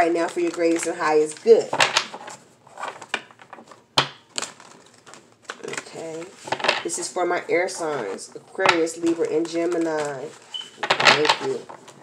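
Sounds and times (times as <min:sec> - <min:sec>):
cards being shuffled: 0:07.9 - 0:12.0.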